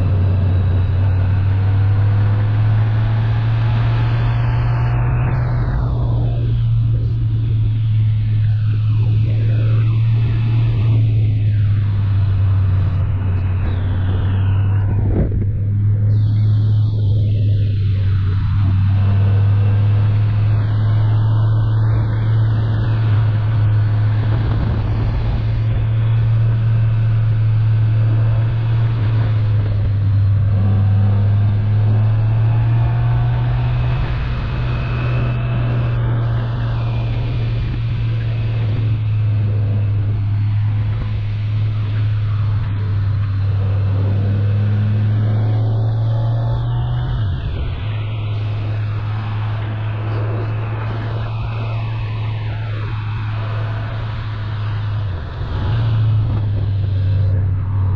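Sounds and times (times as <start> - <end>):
wind noise: 0.0 - 57.9.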